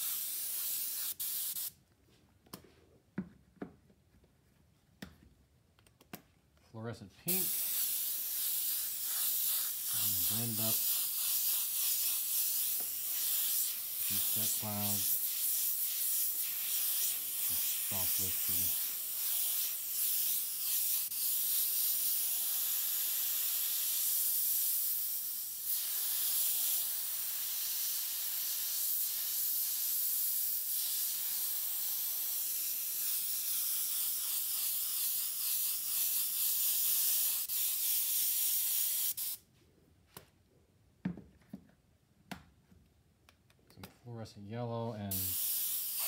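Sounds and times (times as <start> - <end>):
airbrush hissing: 0.0 - 1.7, 7.3 - 39.4, 45.1 - 46.0.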